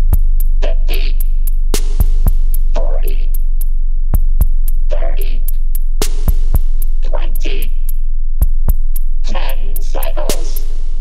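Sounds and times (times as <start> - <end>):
bass music with drum machine: 0.0 - 11.0
sub-bass tone: 0.0 - 11.0.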